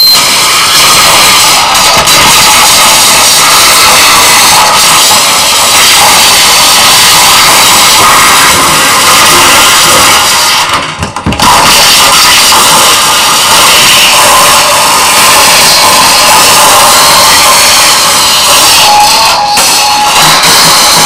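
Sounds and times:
distorted electronic noise: 0:00.0 - 0:21.0.

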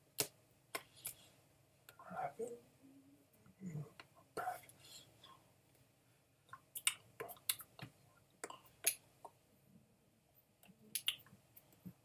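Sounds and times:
person speaking softly: 0:01.9 - 0:04.7.

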